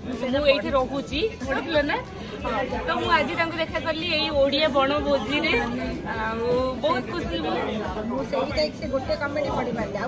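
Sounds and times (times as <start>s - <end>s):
women talking: 0.1s - 10.0s.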